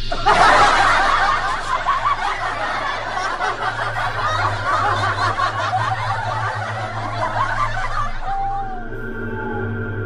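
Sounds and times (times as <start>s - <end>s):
crowd laughing: 0.0s - 9.7s
falling tone: 0.0s - 10.0s
low hum: 0.0s - 10.0s.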